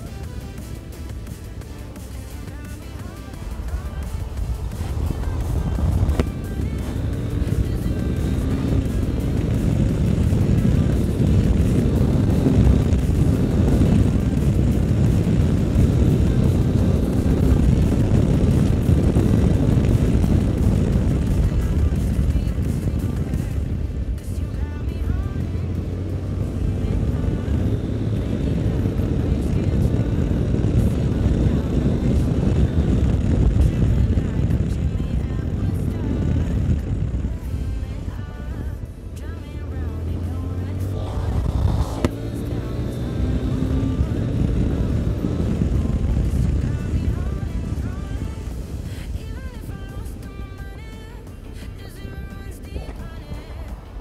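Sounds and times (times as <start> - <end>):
motorcycle engine running: 0.0 - 54.0
wind rumble on microphone: 0.0 - 54.0.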